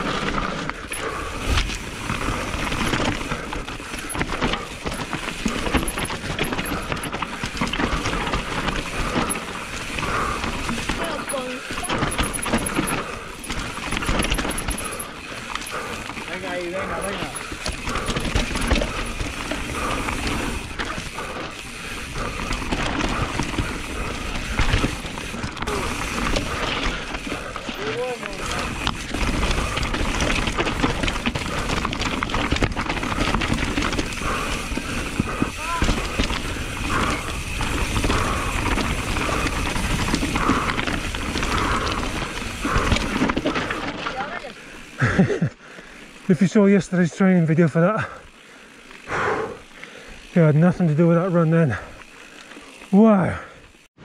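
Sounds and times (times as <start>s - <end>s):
bike knocking and rattling: 0.0s - 53.9s
tyre noise on rough trail: 0.0s - 54.0s.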